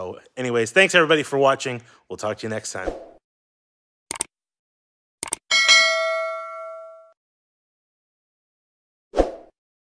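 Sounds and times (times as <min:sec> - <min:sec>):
short clicks: 0:04.1 - 0:04.3, 0:05.2 - 0:05.4
bright bell ding: 0:05.5 - 0:07.2.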